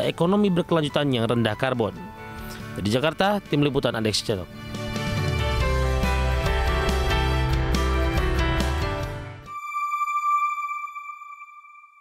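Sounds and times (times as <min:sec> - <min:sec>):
electronic chime tone: 0:09.5 - 0:12.0.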